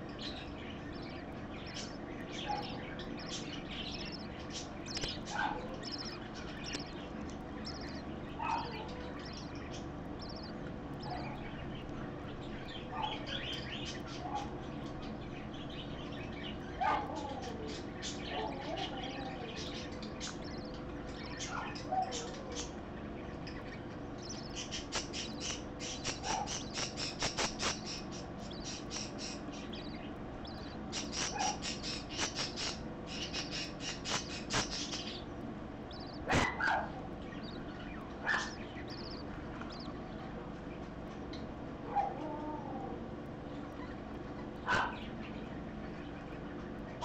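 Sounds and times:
small animal squeaking: 0.9s - 11.6s, 23.5s - 40.1s
harsh bird squawk: 24.3s - 40.1s, 44.6s - 45.2s.

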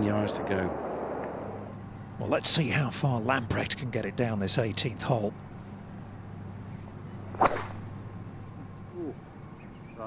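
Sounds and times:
golf club striking ball: 7.3s - 8.1s.

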